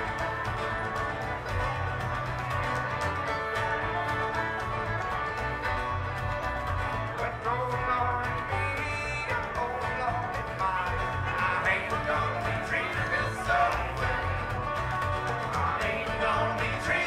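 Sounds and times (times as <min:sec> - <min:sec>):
banjo: 0:00.0 - 0:17.0
fiddle: 0:00.0 - 0:17.0
strummed acoustic guitar: 0:00.0 - 0:17.0
upright bass: 0:00.0 - 0:17.0.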